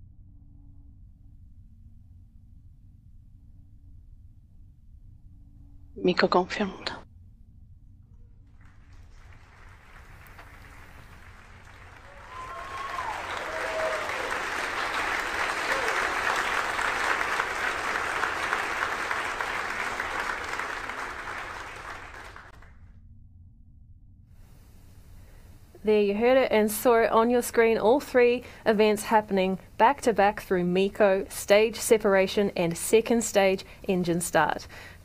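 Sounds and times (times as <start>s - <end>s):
people applauding: 8.5s - 22.7s
people cheering: 9.0s - 22.6s.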